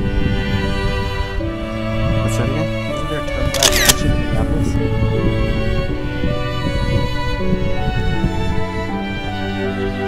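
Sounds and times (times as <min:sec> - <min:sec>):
slow sad music: 0:00.0 - 0:10.0
camera shutter click: 0:03.5 - 0:04.2.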